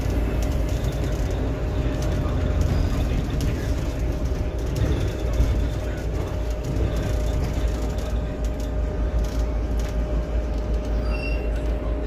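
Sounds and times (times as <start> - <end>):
bus road rumble: 0.0 - 12.0.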